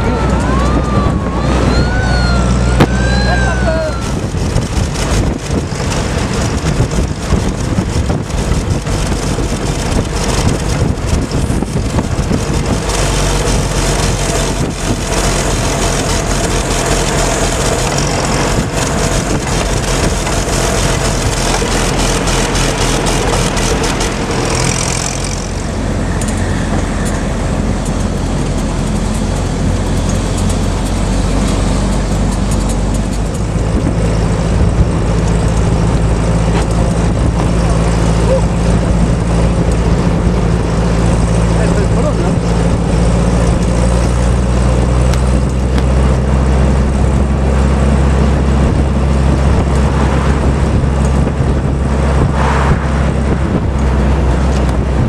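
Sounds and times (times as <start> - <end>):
vehicle engine running: 0.0 - 55.0
wind on microphone: 0.0 - 55.0.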